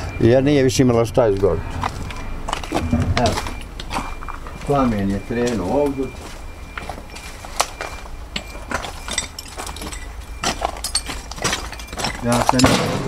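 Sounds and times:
man speaking: 0.0s - 1.7s, 2.8s - 3.6s, 4.6s - 6.2s, 12.2s - 13.0s
footsteps crunching over debris: 1.2s - 13.0s.

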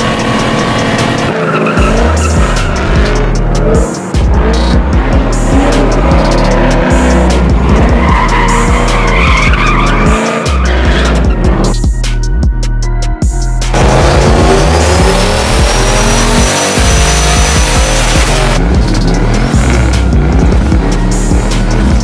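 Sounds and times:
car engine revving: 0.0s - 11.8s, 13.7s - 22.0s
electronic music with heavy bass: 0.0s - 22.0s
tyres squealing: 7.8s - 11.4s.

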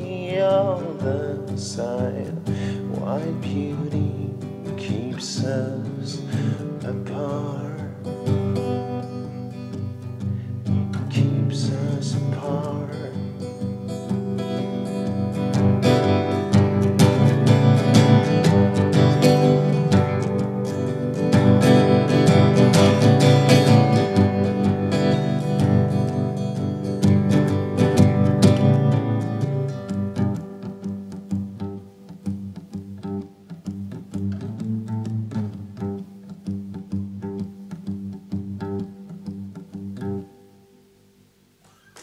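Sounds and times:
man singing: 0.0s - 8.2s, 11.0s - 13.6s
acoustic guitar strummed: 0.0s - 42.0s.

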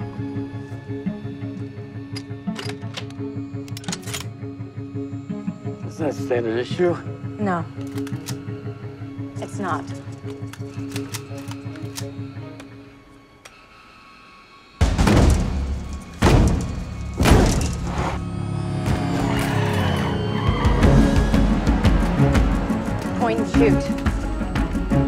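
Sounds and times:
pulsing film score: 0.0s - 25.0s.

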